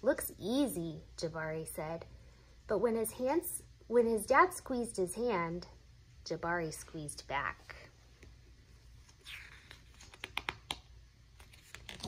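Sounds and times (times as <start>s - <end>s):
book page turning: 9.0s - 12.0s.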